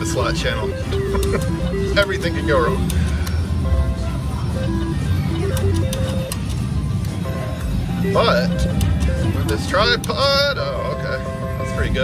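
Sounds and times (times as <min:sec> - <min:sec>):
slot machine reels clicking: 0:00.0 - 0:03.6, 0:04.5 - 0:07.2, 0:08.0 - 0:10.8
slot machine jingle tones: 0:00.0 - 0:12.0.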